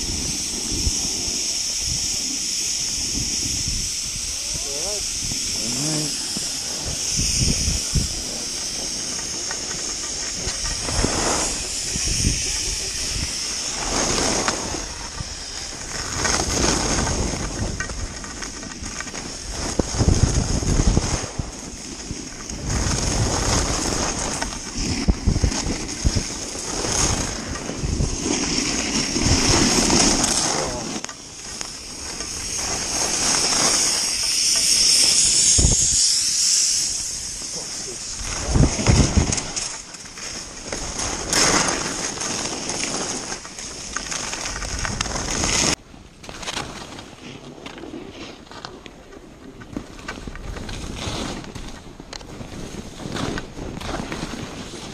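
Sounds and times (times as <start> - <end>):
wind rushing over microphone: 0.0 - 46.2
skis scraping over snow: 0.0 - 54.9.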